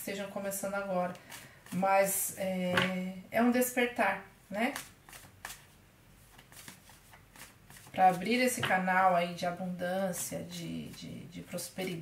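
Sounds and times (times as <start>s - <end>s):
cards shuffling: 4.7s - 8.8s.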